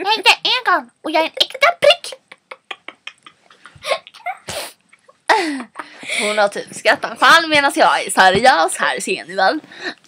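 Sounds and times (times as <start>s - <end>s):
girl sneezing: 4.2s - 4.8s.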